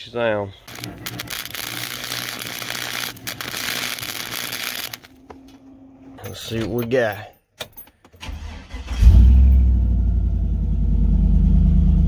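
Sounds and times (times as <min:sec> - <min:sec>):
arc welding crackling sizzle: 0:00.6 - 0:05.3.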